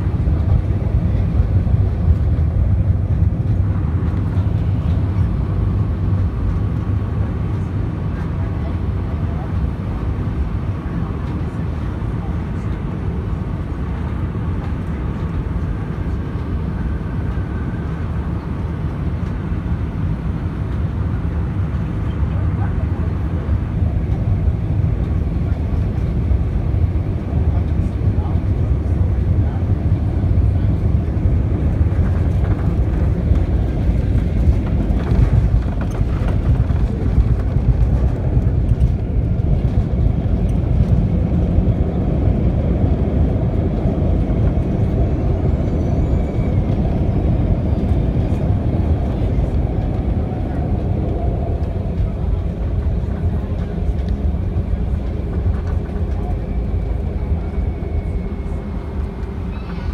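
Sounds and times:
airplane cabin landing rumble: 0:00.0 - 0:59.9.

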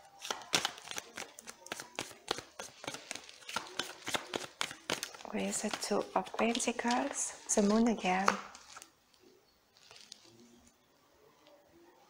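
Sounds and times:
cards being shuffled by hand: 0:00.2 - 0:08.9.

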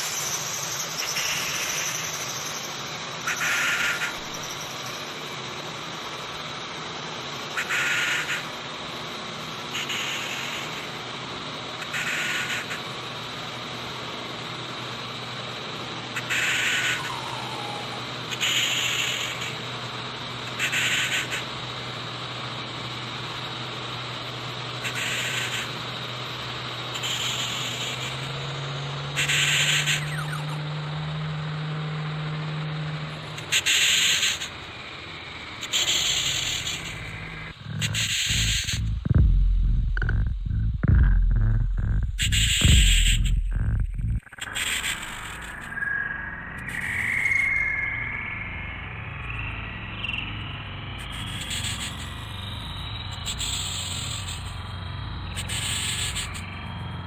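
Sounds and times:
low synthesizer drone: 0:16.8 - 0:18.3, 0:35.1 - 0:47.0
short bursts of high noise: 0:36.0 - 0:45.5.

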